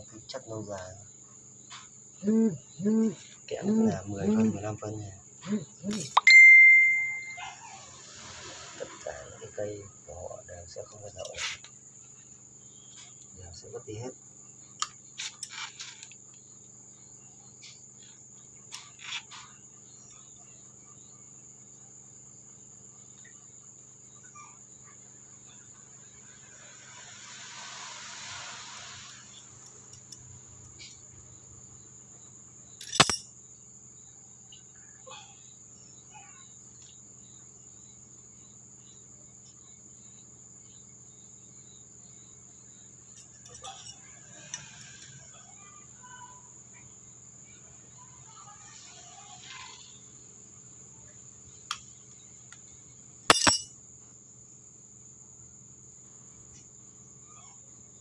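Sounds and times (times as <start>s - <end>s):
crickets trilling: 0.0s - 58.0s.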